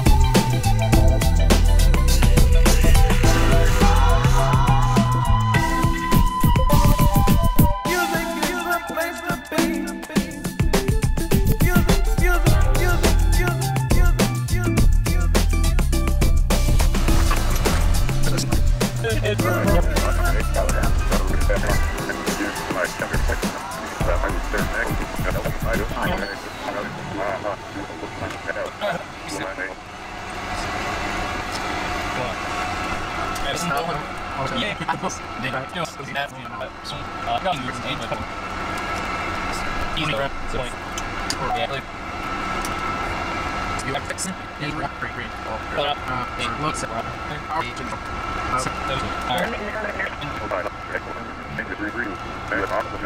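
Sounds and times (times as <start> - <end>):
indistinct voices: 0.0 - 53.0
steady mechanical hum: 16.9 - 53.0.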